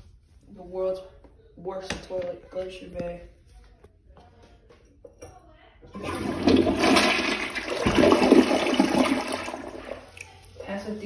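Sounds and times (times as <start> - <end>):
toilet flushing: 5.9 - 11.0.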